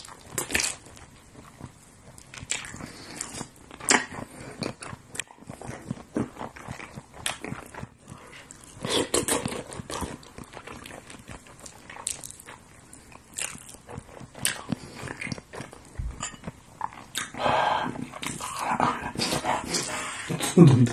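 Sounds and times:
wet chewing and lip-smacking: 0.0 - 20.9.

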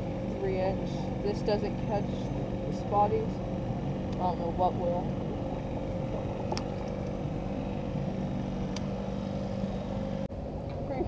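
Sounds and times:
motorboat engine humming: 0.0 - 11.0.

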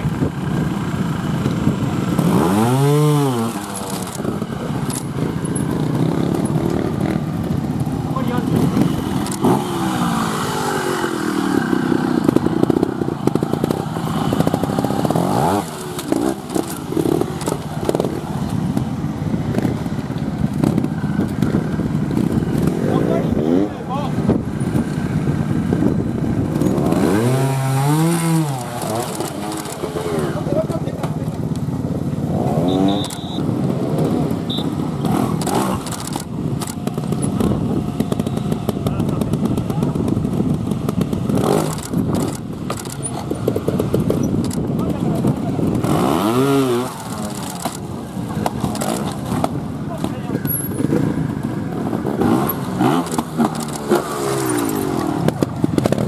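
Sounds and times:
motorcycle engine revving: 0.0 - 56.0
onlookers talking: 0.8 - 25.2, 26.0 - 56.0.

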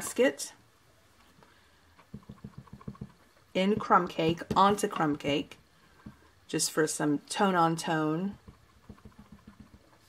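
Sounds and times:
stamp tapping on ink pad: 2.1 - 3.2, 8.3 - 9.9.

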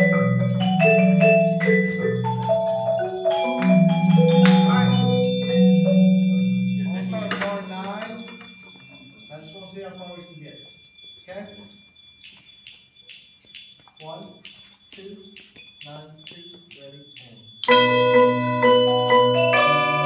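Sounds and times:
marimba ensemble playing chords: 0.0 - 8.6, 17.6 - 20.0
light evenly spaced ticks: 0.0 - 17.7.

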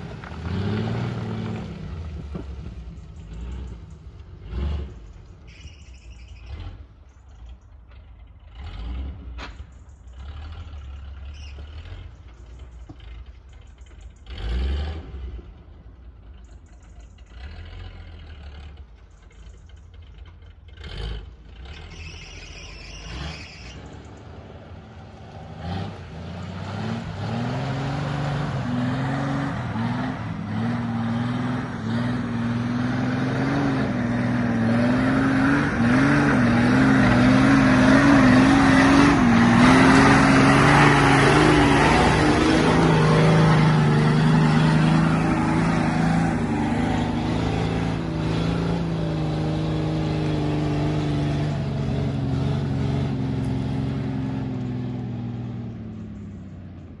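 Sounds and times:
off-road vehicle engine labouring: 0.0 - 57.0
tyres working through mud: 0.0 - 57.0.

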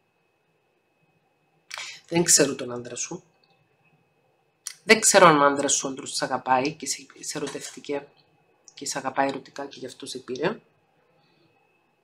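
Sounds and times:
faint high-pitched whine: 0.0 - 12.0.

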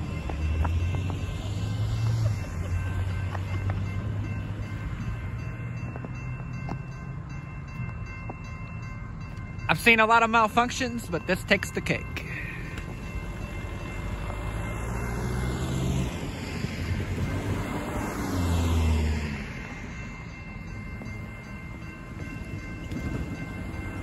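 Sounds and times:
cars driving across railroad crossing: 0.0 - 24.0.

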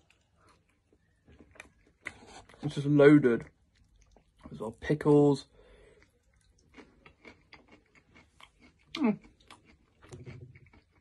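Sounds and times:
person chewing crunchy food: 0.0 - 4.7, 5.7 - 11.0.

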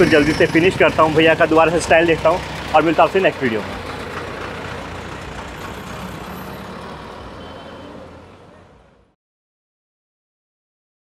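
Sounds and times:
roadside traffic noise: 0.0 - 9.2.

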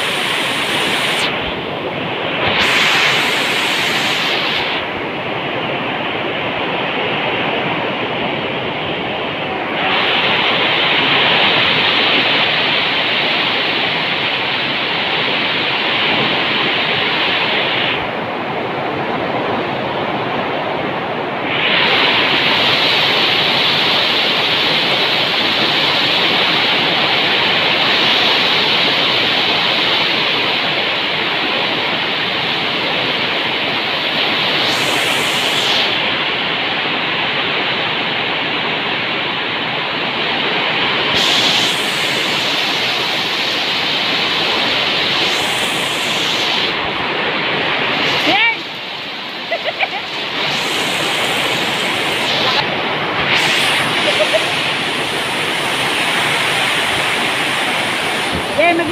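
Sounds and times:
heavy rain pouring: 0.0 - 58.9.

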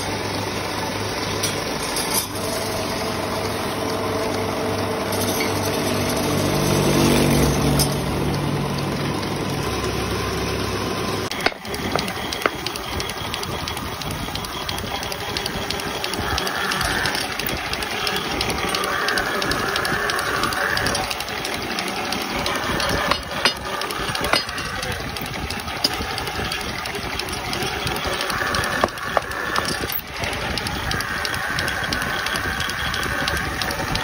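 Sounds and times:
wood lathe motor running: 0.0 - 34.0.

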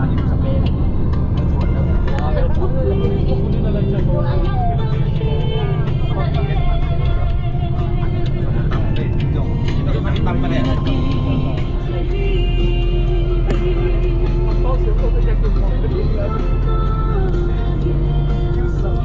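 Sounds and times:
bus engine rumble: 0.0 - 19.0
music with singing voice: 0.0 - 19.0.

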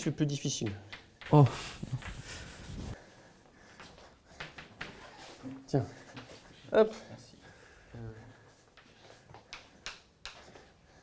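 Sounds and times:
chalk tapping and scraping on blackboard: 0.4 - 3.0, 3.8 - 6.5, 8.5 - 10.8.

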